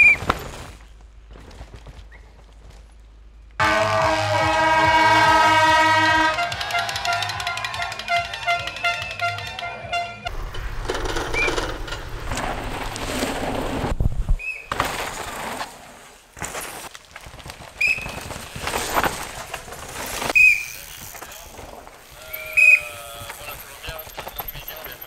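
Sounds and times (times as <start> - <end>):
air horns blaring: 3.6 - 10.4
bike rushing past: 10.3 - 16.8.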